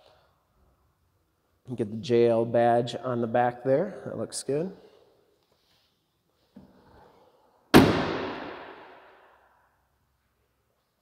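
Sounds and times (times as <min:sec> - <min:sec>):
car tailgate slamming shut: 0:07.7 - 0:08.4.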